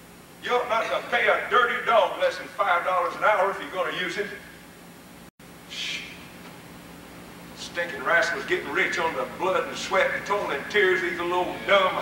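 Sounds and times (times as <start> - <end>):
tape hiss and low hum: 0.0 - 12.0.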